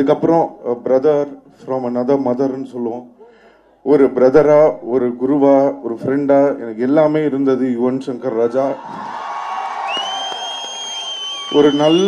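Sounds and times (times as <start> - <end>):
audience cheering: 8.6 - 12.0
shrill whistle: 9.8 - 12.0.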